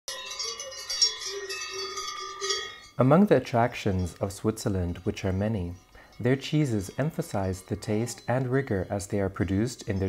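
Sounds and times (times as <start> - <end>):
cowbells ringing: 0.1 - 10.0.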